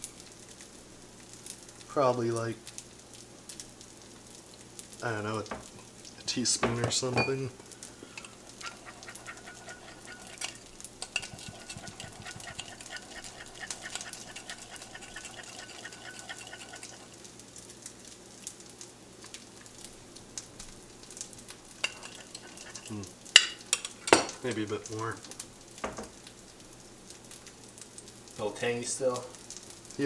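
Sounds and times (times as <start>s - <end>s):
spoon scraping ceramic bowl: 8.1s - 17.2s, 21.8s - 24.4s.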